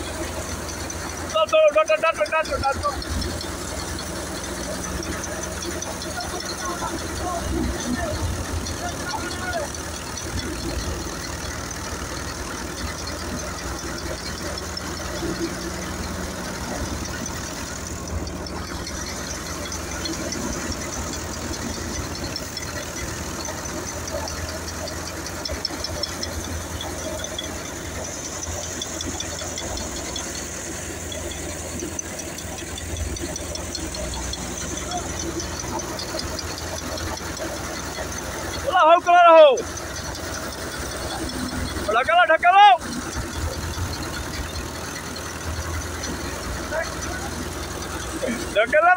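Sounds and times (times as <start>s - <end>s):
tractor diesel engine running: 0.0s - 48.9s.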